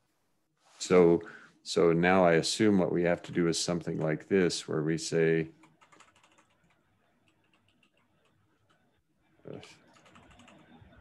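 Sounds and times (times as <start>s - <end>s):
computer keyboard keystrokes: 5.6s - 6.7s, 7.3s - 8.4s, 9.9s - 10.7s.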